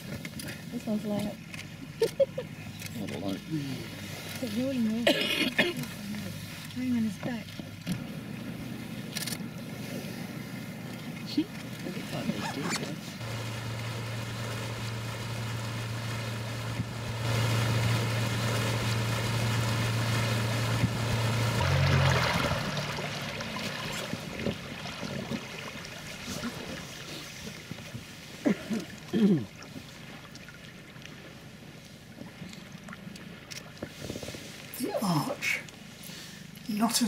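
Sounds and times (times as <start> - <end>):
outboard motor humming: 0.0 - 36.6.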